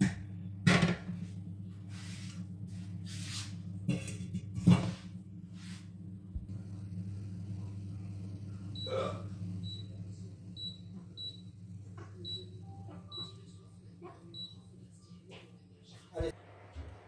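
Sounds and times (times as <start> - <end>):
pot boiling low hum: 0.0 - 15.4, 16.2 - 17.0.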